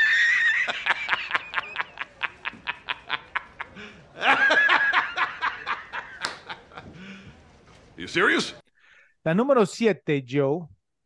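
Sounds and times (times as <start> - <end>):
man laughing heartily: 0.0 - 7.0.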